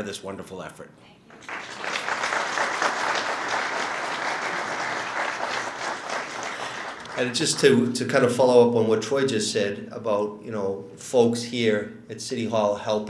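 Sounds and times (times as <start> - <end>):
audience applauding: 1.4 - 8.0.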